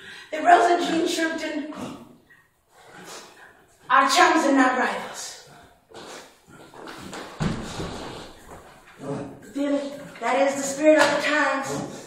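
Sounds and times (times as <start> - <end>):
thump and rustle: 7.1 - 8.4.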